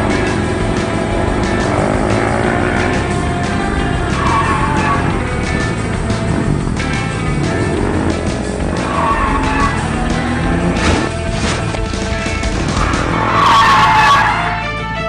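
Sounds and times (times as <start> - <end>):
tyre squeal: 0.0 - 14.6
car driving fast: 0.0 - 14.8
background music: 0.0 - 15.0.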